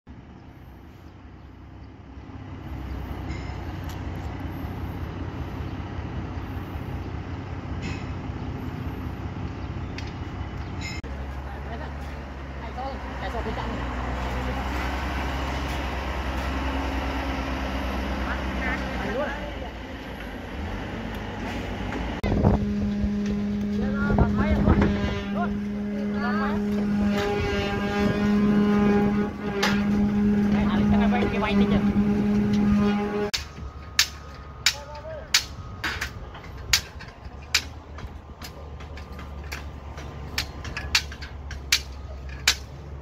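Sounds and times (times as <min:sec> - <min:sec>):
diesel engine droning: 0:00.1 - 0:43.0
loud steady hum: 0:22.2 - 0:42.7.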